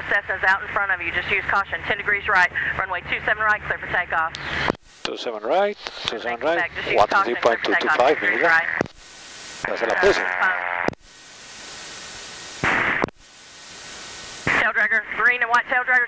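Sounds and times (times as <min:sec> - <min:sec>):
radio crackle: 0:00.0 - 0:16.0
radio hiss and static: 0:00.0 - 0:16.0
garbled radio voice: 0:04.4 - 0:08.8, 0:09.6 - 0:10.8.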